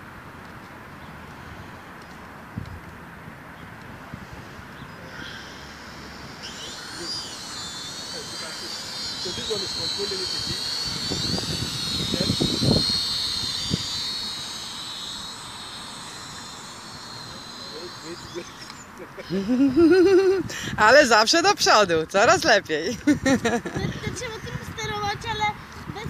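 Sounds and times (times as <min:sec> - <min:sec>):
toy quadcopter motors whining: 0:01.0 - 0:02.8, 0:03.7 - 0:26.0.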